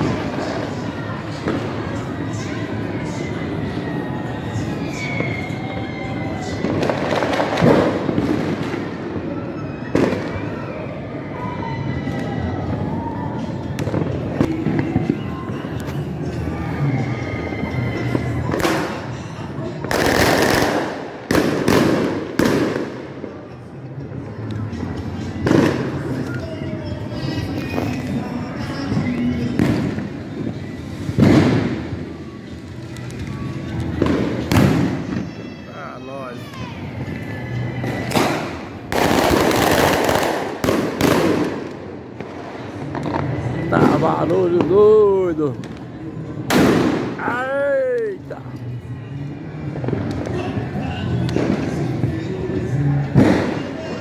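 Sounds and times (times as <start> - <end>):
fireworks bangs: 6.2 - 10.8, 12.1 - 16.8, 17.6 - 24.2, 25.2 - 35.6, 36.9 - 47.4, 49.7 - 54.0
background music: 11.0 - 54.0.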